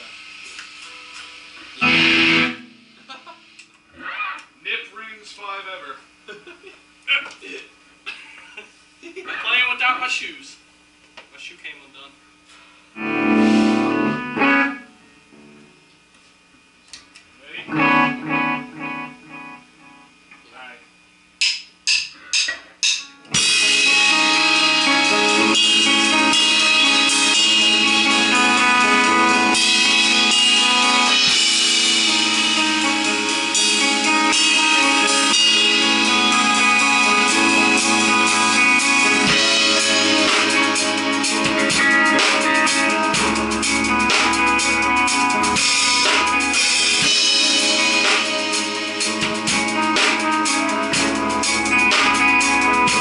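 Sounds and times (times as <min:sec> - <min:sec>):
electric guitar chord ringing: 0:00.8 - 0:04.6, 0:13.0 - 0:16.0, 0:17.4 - 0:20.3, 0:22.2 - 0:53.0
rock band playing loudly: 0:00.9 - 0:04.2, 0:13.0 - 0:14.9, 0:17.7 - 0:20.1, 0:21.8 - 0:53.0.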